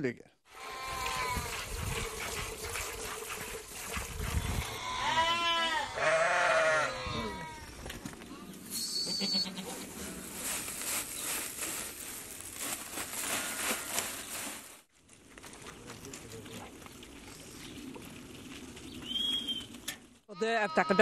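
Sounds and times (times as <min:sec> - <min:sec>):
sheep and goats bleating: 0:00.5 - 0:01.4, 0:04.6 - 0:07.8, 0:08.8 - 0:10.2, 0:20.3 - 0:21.0.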